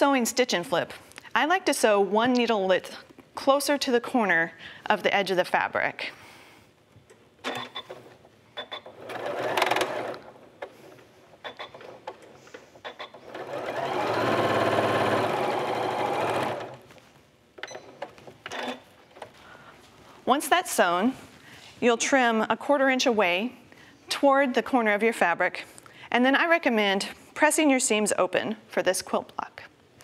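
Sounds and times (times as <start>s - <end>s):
sewing machine stitching: 8.6s - 10.4s, 12.8s - 16.8s.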